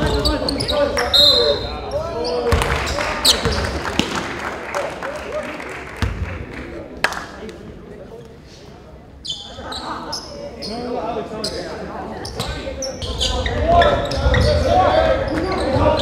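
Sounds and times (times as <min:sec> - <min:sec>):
basketball bouncing on court: 0:02.5 - 0:04.2.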